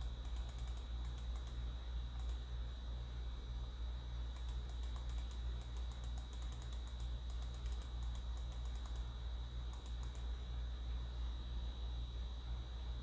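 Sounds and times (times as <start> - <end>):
computer keys clicking: 0.0 - 1.6, 2.2 - 2.4, 4.3 - 9.1, 9.7 - 10.3
faint high whine: 0.0 - 13.0
low electrical hum: 0.0 - 13.0.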